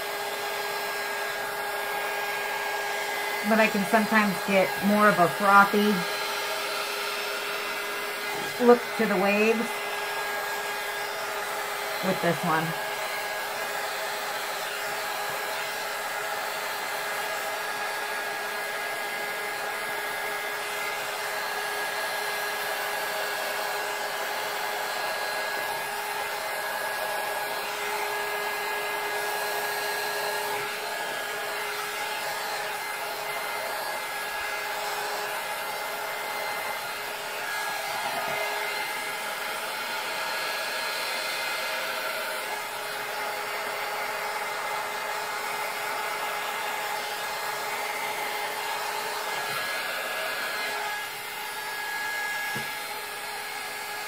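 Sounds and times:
heat gun blowing air: 0:00.0 - 0:54.0.

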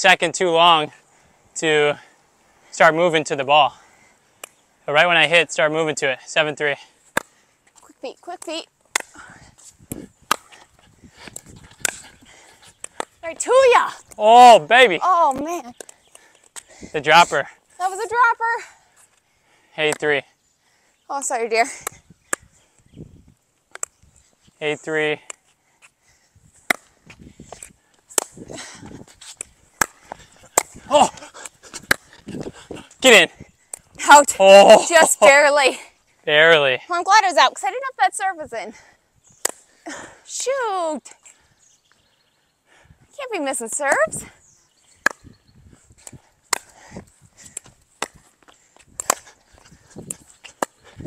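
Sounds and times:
paddles hitting plastic ball: 0:26.6 - 0:28.4, 0:29.3 - 0:32.2, 0:47.6 - 0:49.3.

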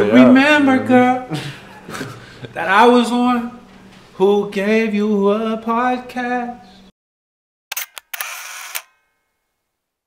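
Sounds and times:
camera shutter clicks: 0:07.7 - 0:09.0.

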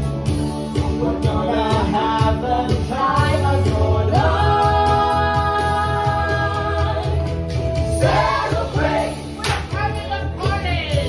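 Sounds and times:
amplified music with heavy bass: 0:00.0 - 0:11.0
group singing together: 0:01.2 - 0:09.7.

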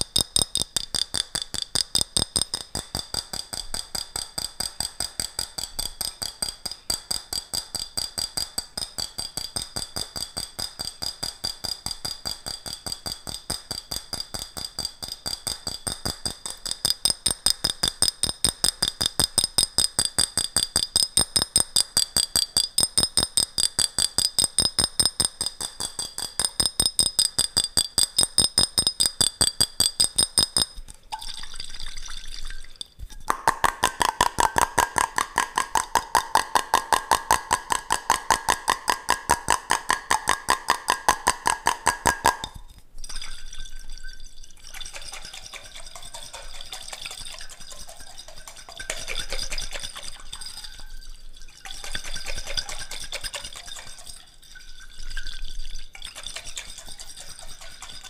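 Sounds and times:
fingers tapping glass jar: 0:00.0 - 0:31.4, 0:32.7 - 0:43.4, 0:44.8 - 0:54.2, 0:56.0 - 0:58.0.

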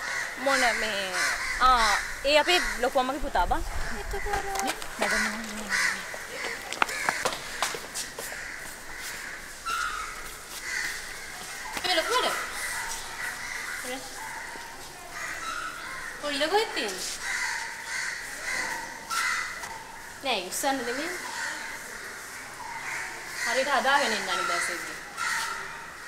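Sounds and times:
crows cawing: 0:00.0 - 0:26.0
person speaking: 0:04.1 - 0:06.7.

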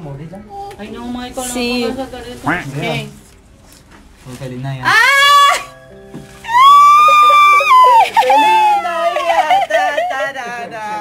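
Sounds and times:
woman squealing with delight: 0:04.8 - 0:05.7, 0:06.4 - 0:10.1.

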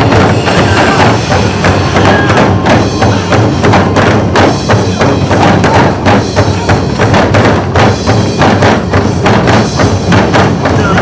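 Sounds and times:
drum ensemble striking barrel drums: 0:00.0 - 0:11.0.

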